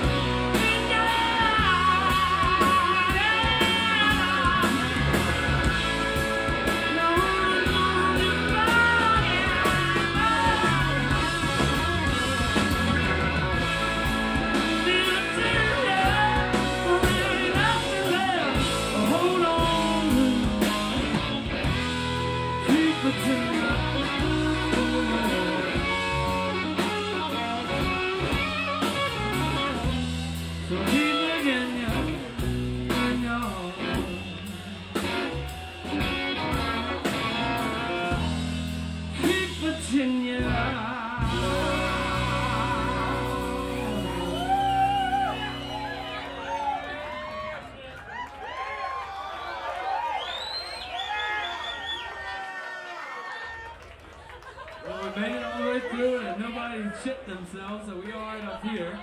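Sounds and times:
electric guitar lead bending: 0.0 - 47.6
live rock band playing: 0.0 - 48.2.

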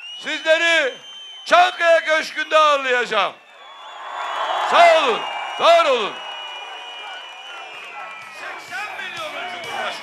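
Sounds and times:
crowd voices and cheering: 0.0 - 10.0.

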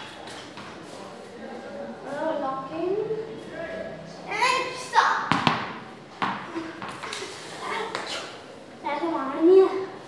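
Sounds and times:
ball knocking on stone floor: 5.3 - 7.1.

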